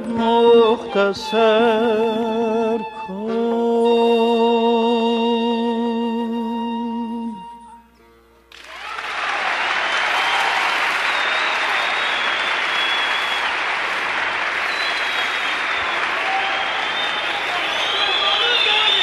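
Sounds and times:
audience applauding: 0:08.5 - 0:19.0
whistles and shouts: 0:09.6 - 0:13.7, 0:14.5 - 0:19.0.

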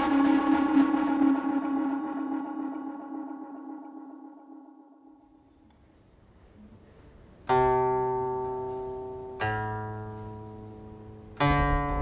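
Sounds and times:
ringing musical tone: 0:00.0 - 0:05.6.

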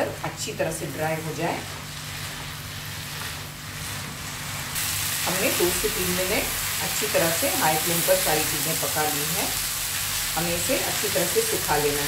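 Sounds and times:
food sizzling in a wok: 0:00.0 - 0:12.0.

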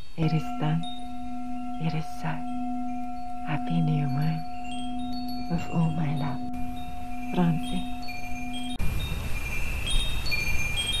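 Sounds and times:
wind chimes ringing: 0:00.0 - 0:11.0.

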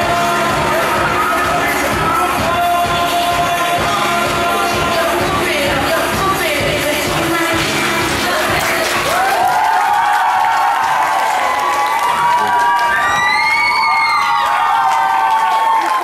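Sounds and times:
dance music: 0:00.0 - 0:16.0
children cheering and shouting: 0:08.5 - 0:16.0.

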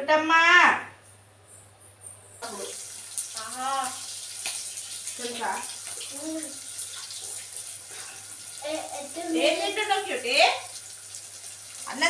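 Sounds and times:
tap water running into sink: 0:02.4 - 0:12.0.

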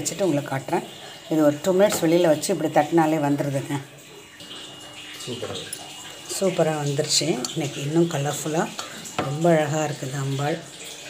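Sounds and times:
wet handling and water sounds: 0:00.0 - 0:11.0.

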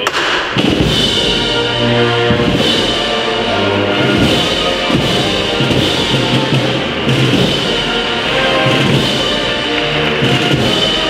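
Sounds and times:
low drum thuds: 0:00.1 - 0:11.0
wind band playing a march: 0:00.6 - 0:11.0.

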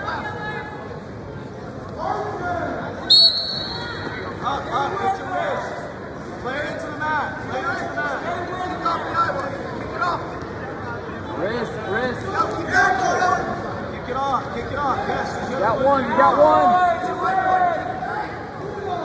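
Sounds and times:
referee's whistle: 0:03.1 - 0:04.1.

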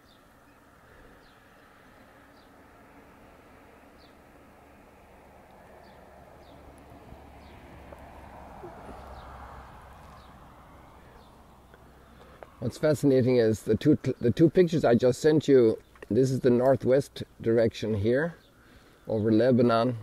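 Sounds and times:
small bird chirping: 0:05.8 - 0:12.6.

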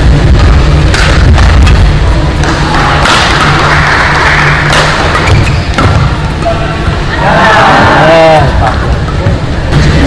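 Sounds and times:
arena noise: 0:00.0 - 0:10.0
racket hitting shuttlecock: 0:00.8 - 0:03.6, 0:04.6 - 0:06.5.

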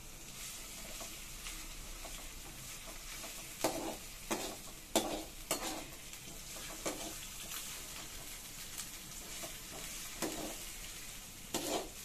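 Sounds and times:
onions sizzling in oil: 0:00.0 - 0:12.0
spatula scraping pan: 0:02.0 - 0:08.3, 0:09.2 - 0:12.0.

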